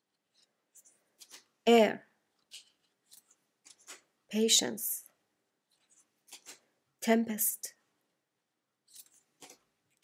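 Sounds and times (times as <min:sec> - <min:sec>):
playing cards sliding: 0:02.5 - 0:04.1, 0:05.7 - 0:06.7.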